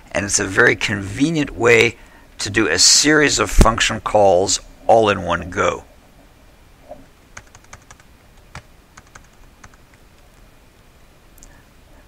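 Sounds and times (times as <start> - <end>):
typing on keyboard: 7.4 - 10.3.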